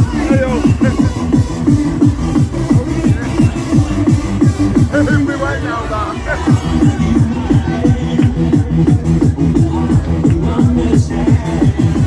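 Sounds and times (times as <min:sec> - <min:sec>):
electronic dance music: 0:00.0 - 0:12.0.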